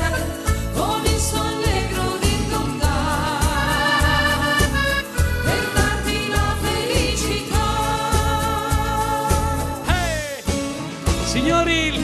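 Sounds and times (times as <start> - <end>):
accordion melody: 0.0 - 12.0
dance band playing: 0.4 - 12.0.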